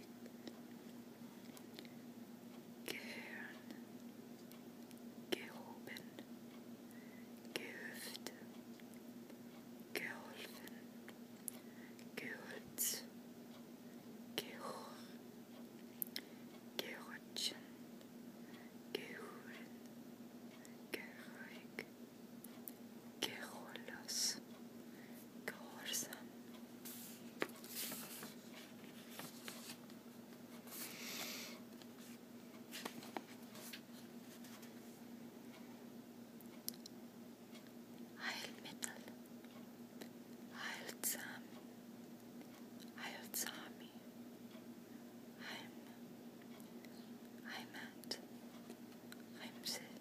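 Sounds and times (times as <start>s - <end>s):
soft whispering: 2.8s - 3.9s, 5.3s - 6.3s, 7.5s - 8.6s, 9.9s - 10.9s, 12.1s - 13.1s, 14.4s - 15.2s, 16.2s - 17.8s, 18.5s - 19.8s, 20.6s - 21.9s, 23.2s - 29.8s, 38.2s - 39.2s, 40.5s - 41.6s, 42.9s - 44.1s, 45.4s - 46.0s, 46.8s - 48.3s, 49.2s - 50.0s.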